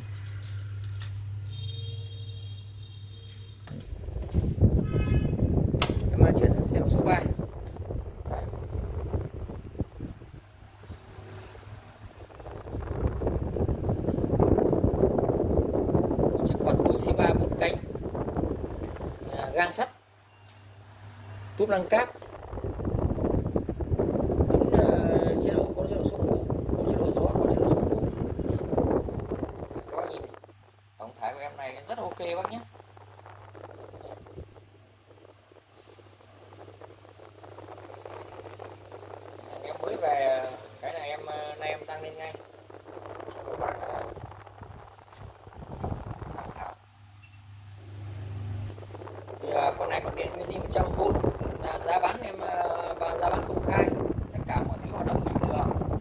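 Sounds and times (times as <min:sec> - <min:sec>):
faint air noise: 0:00.0 - 0:56.0
fan motor hum: 0:00.0 - 0:56.0
wind buffeting microphone: 0:03.7 - 0:19.6, 0:21.6 - 0:46.9, 0:47.9 - 0:56.0.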